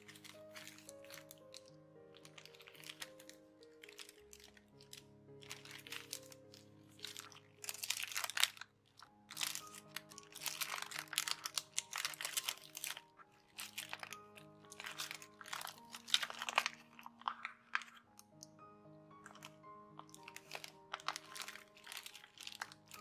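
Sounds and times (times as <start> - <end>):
paper crinkling and rustling: 0.0 - 18.6, 19.2 - 23.0
background music with held notes: 0.0 - 23.0.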